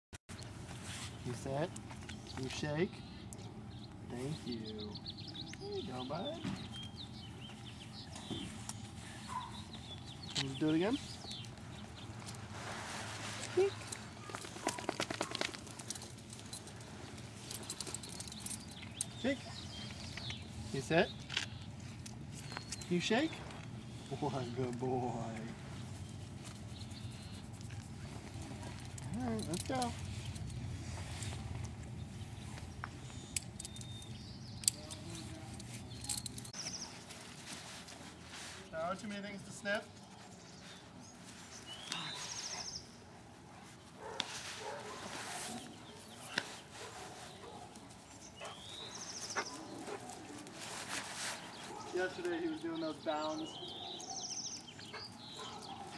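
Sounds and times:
dog paws scuffing on gravel: 43.5 - 54.0.

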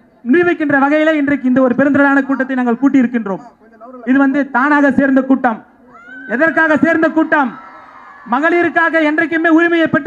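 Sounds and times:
man shouting over loudspeaker: 5.9 - 10.0.

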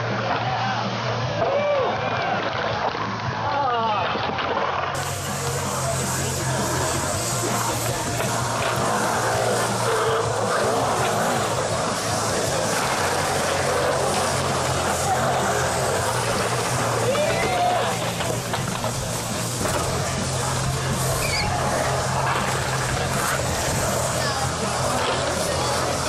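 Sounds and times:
skateboard wheels rolling on concrete: 0.0 - 26.0.

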